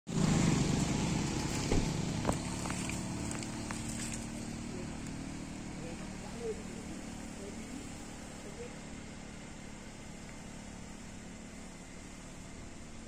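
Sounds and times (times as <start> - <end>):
engine running steadily: 0.1 - 13.0.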